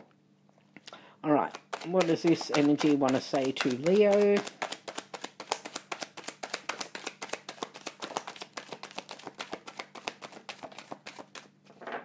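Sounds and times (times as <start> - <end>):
cards being shuffled: 1.4 - 11.8.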